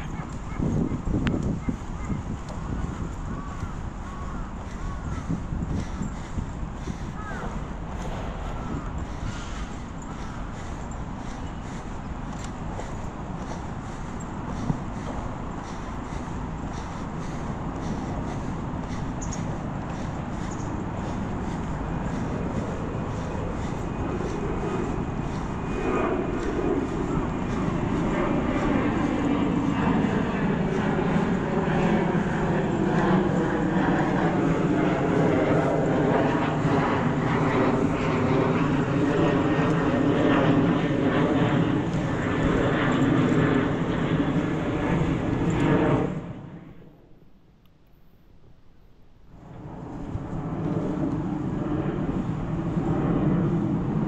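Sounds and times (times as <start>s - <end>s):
aircraft engine overhead: 0.0s - 54.0s.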